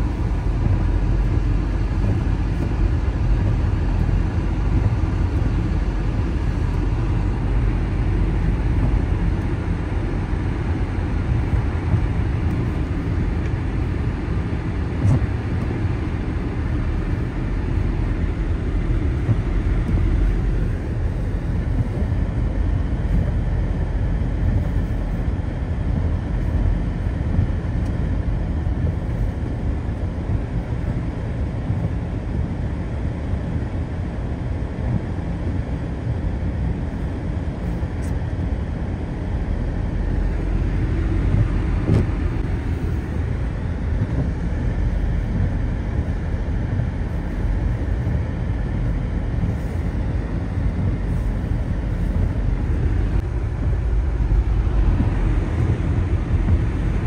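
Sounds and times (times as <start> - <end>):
car engine and tyres rumble: 0.0 - 57.0.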